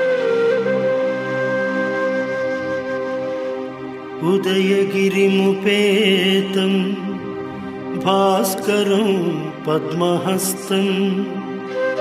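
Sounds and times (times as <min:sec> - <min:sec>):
steady drone: 0:02.5 - 0:12.0.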